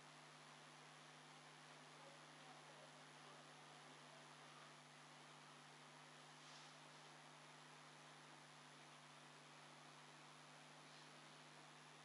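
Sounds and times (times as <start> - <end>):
faint electrical hum: 0.0 - 12.0
low steady hiss: 0.0 - 12.0.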